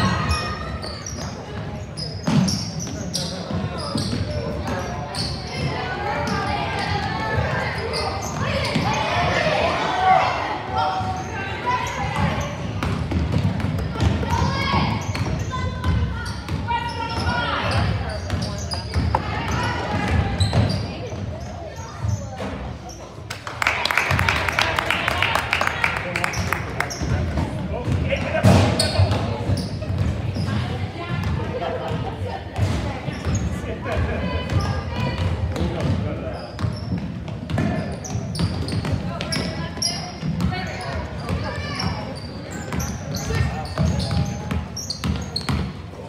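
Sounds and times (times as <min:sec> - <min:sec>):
sneakers squeaking: 0:00.0 - 0:23.2, 0:25.8 - 0:46.0
voices echoing in hall: 0:00.0 - 0:46.0
basketball bouncing on gym floor: 0:12.1 - 0:21.3, 0:26.9 - 0:45.8
basketball bouncing: 0:12.2 - 0:16.6, 0:36.6 - 0:39.6.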